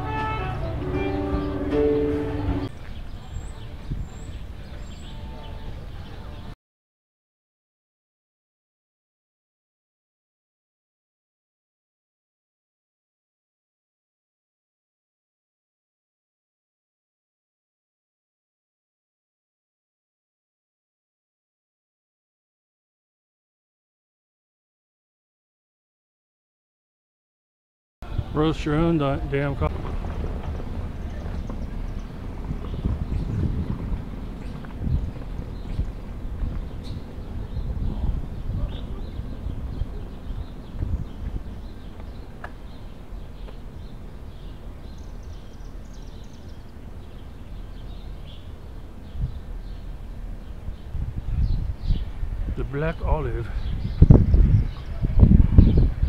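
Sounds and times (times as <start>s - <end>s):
footsteps on sidewalk: 0.0s - 6.2s, 28.8s - 48.1s
wind rumble on microphone: 0.0s - 6.6s, 28.0s - 56.0s.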